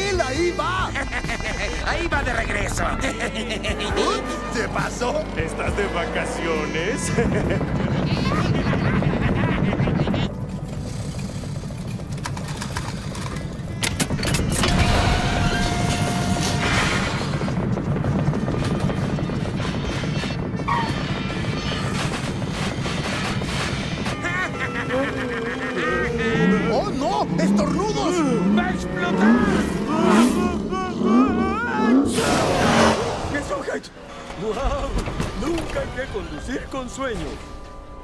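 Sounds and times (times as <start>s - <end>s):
film music: 0.0s - 38.0s
vehicle engines and road noise: 0.0s - 38.0s.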